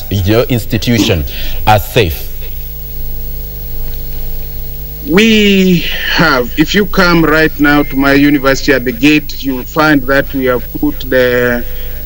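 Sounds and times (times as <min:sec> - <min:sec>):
electrical mains hum with hiss: 0:00.0 - 0:12.0.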